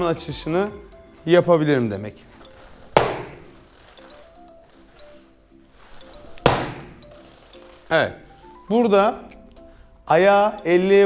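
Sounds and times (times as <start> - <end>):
soft background music: 0.0 - 11.0
foot slapping kick paddle: 2.9 - 3.6, 6.4 - 7.1.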